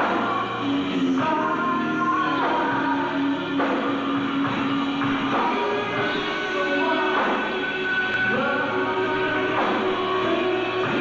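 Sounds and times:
hard rock band playing live: 0.0 - 11.0.

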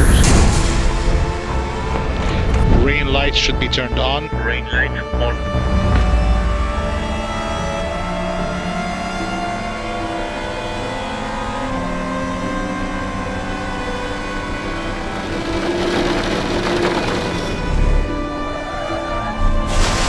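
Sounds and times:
race car engine at speed: 13.7 - 18.3.

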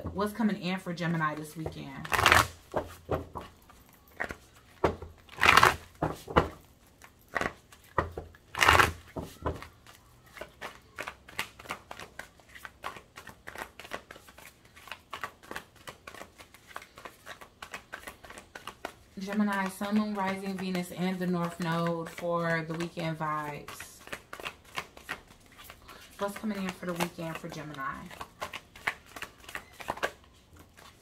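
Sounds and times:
cards riffling: 2.0 - 20.7, 23.7 - 31.0.

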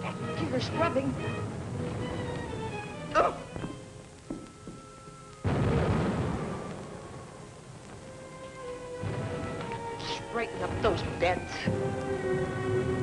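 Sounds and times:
background music: 0.0 - 13.0
heavy explosion boom: 5.4 - 7.4.

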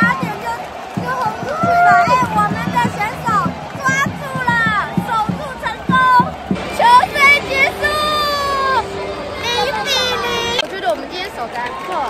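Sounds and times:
women shrieking and cheering: 0.0 - 10.6.

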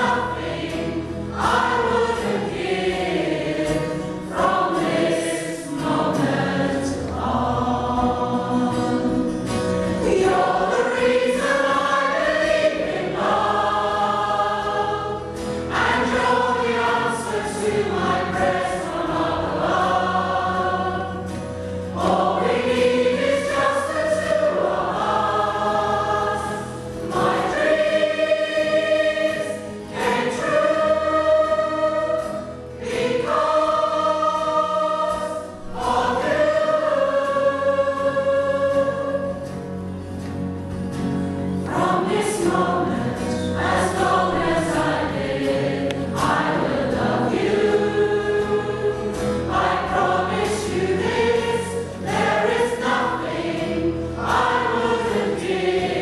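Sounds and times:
mixed choir singing slow ballad: 0.0 - 56.0.

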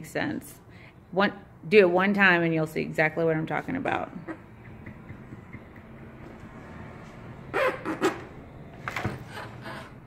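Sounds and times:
loud animal calls: 7.5 - 8.3.

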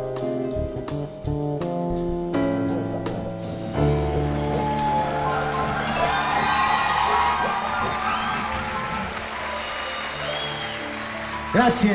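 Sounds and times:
audience applauding: 3.8 - 11.9.

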